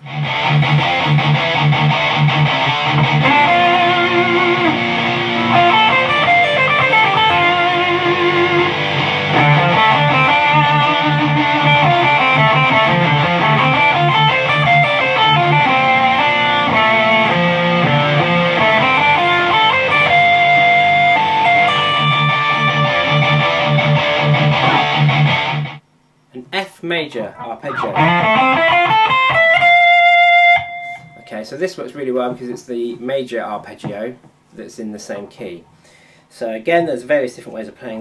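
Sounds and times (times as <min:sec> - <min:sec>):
electric guitar lead line: 0:00.0 - 0:25.8, 0:27.3 - 0:31.3
heavy metal guitar riff: 0:00.0 - 0:25.8, 0:27.4 - 0:31.3.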